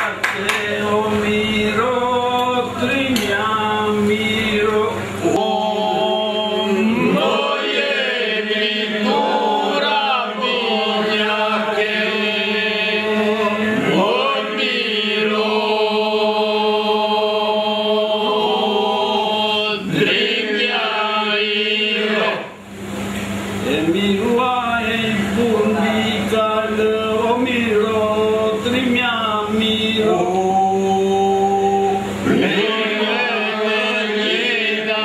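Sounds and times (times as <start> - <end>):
men singing unaccompanied folk song: 0.0 - 22.4, 24.0 - 35.0.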